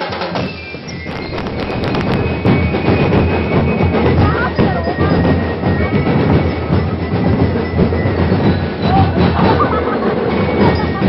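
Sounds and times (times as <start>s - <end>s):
crowd noise: 0.0s - 11.0s
parade drumming: 0.0s - 11.0s.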